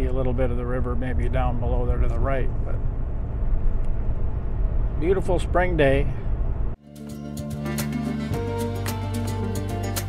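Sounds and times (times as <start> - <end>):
truck engine and tyres rumbling: 0.0 - 6.8.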